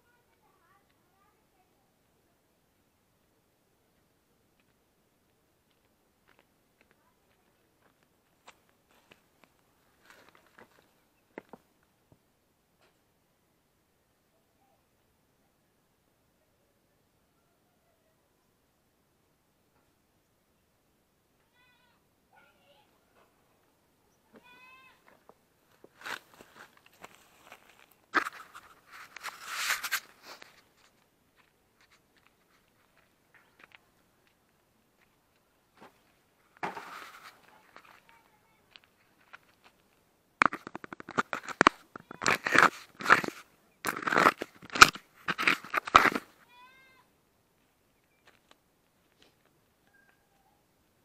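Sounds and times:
crunches on stony ground: 0:04.6 - 0:11.8, 0:24.4 - 0:46.6, 0:47.6 - 0:50.2
faint animal cries: 0:49.8 - 0:50.7
faint high-pitched call: 0:49.8 - 0:50.7.

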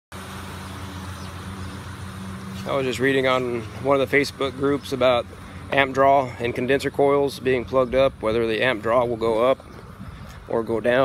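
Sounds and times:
condensing unit fans humming: 0:00.2 - 0:10.6.

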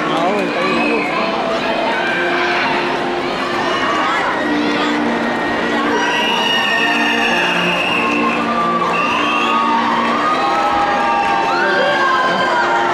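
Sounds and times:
crowd cheering and shouting: 0:00.0 - 0:12.9
music with held notes: 0:00.0 - 0:12.9
high yells: 0:05.8 - 0:12.9.

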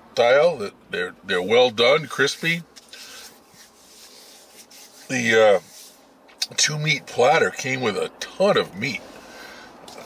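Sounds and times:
hands rubbing together: 0:02.4 - 0:06.0.

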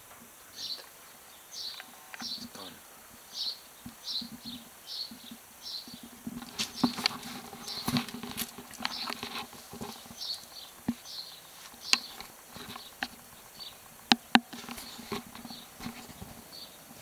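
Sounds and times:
footsteps on grass and stone: 0:01.6 - 0:17.0
rustling and clicks: 0:03.8 - 0:17.0.

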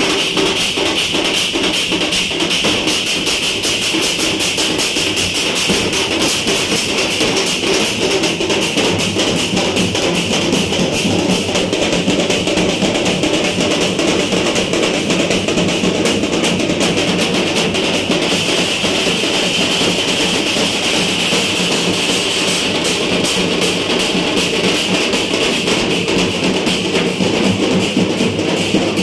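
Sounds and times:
street drum band: 0:00.0 - 0:29.0.

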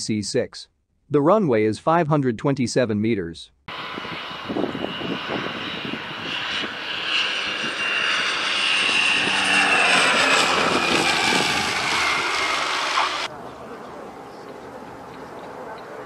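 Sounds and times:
turboprop airplane flying by: 0:03.7 - 0:16.0.

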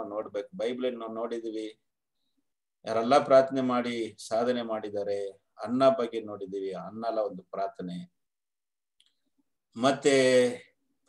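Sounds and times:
man speaking: 0:00.0 - 0:01.8, 0:02.8 - 0:08.2, 0:09.7 - 0:10.8.

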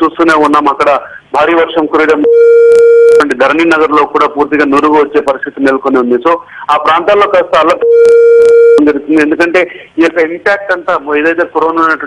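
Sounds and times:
electronic beep: 0:07.8 - 0:08.8.

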